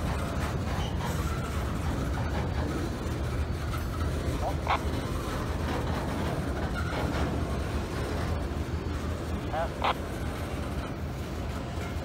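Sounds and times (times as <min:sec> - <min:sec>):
freight train rolling past: 0:00.0 - 0:12.0.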